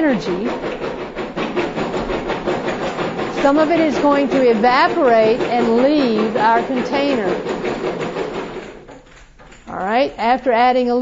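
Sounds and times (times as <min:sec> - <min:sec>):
small balls rattling in container: 0:00.0 - 0:10.6.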